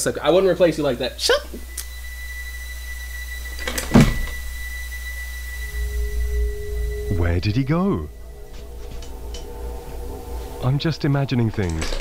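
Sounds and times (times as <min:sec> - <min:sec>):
faint high steady tone: 0:00.0 - 0:12.0
held low note: 0:04.2 - 0:12.0
low steady rumble: 0:04.2 - 0:12.0.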